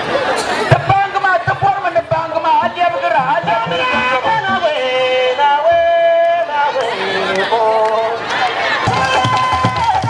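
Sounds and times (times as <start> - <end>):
young man singing into microphone: 0.7 - 8.3.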